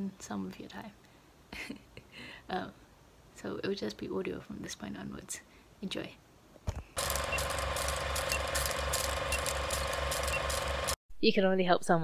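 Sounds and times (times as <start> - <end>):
projector clatter: 7.0 - 11.0.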